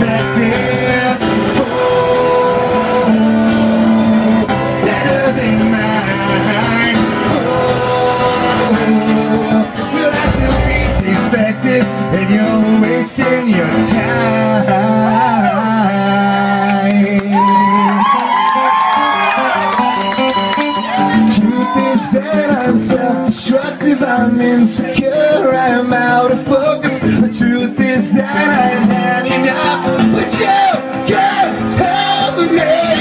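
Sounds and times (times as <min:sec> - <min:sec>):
acoustic guitar strumming chords: 0:00.0 - 0:15.1, 0:20.3 - 0:33.0
person singing: 0:00.0 - 0:18.0, 0:21.0 - 0:33.0.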